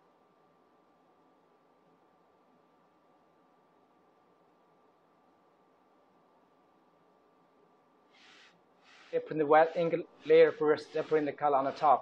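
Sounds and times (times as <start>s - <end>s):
short soft hisses: 8.1s - 9.2s
person speaking: 9.0s - 12.0s.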